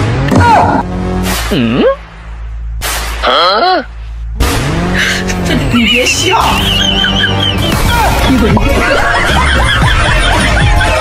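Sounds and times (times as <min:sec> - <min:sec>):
car engine revving: 0:04.4 - 0:10.6.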